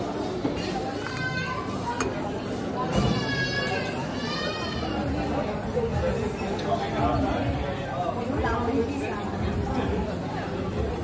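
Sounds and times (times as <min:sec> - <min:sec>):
diners chattering: 0:00.0 - 0:11.0.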